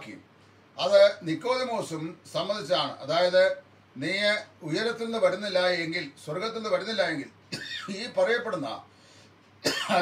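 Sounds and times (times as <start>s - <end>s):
man coughing and clearing throat: 7.5s - 8.0s, 9.6s - 10.0s.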